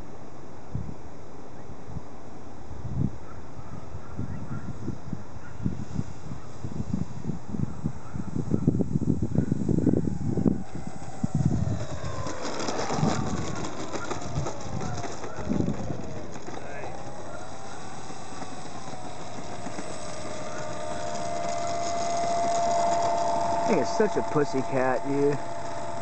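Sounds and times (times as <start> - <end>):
low uneven rumbling: 9.8 - 26.0
model plane motor whining: 9.9 - 26.0.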